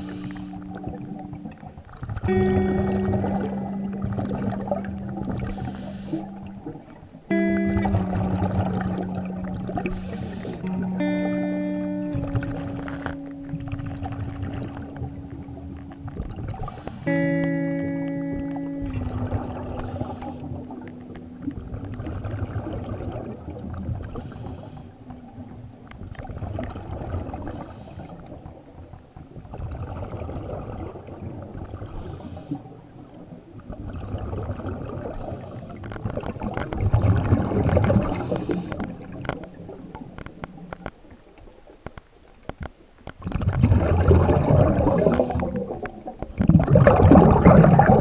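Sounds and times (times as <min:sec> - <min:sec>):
regulator exhale bubbles: 0:00.0 - 0:01.2, 0:02.0 - 0:11.2, 0:12.2 - 0:17.6, 0:18.9 - 0:25.1, 0:26.3 - 0:28.5, 0:29.5 - 0:32.8, 0:33.7 - 0:40.0, 0:43.2 - 0:48.0
low water gurgling: 0:00.0 - 0:48.0.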